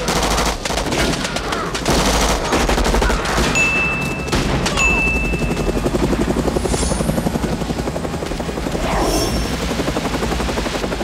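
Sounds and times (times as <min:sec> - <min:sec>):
helicopter rotor chopping: 0:00.0 - 0:11.0.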